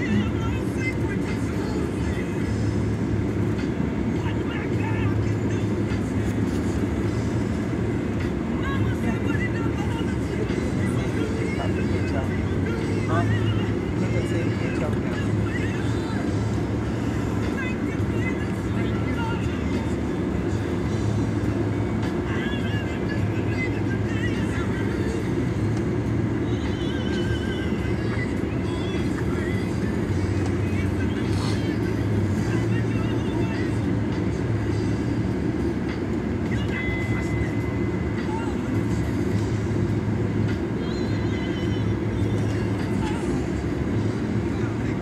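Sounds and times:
car road and engine rumble: 0.0s - 45.0s
faint music: 0.0s - 45.0s.

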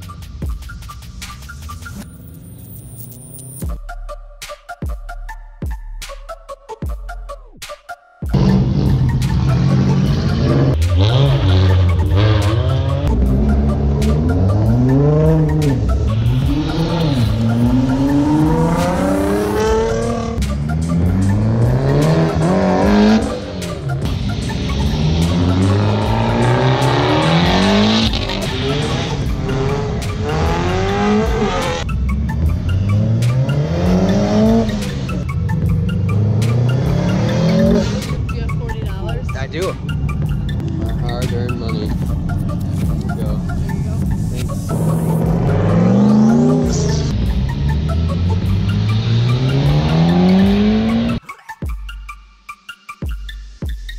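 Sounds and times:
car engine revving hard: 8.4s - 38.2s, 44.7s - 51.2s.

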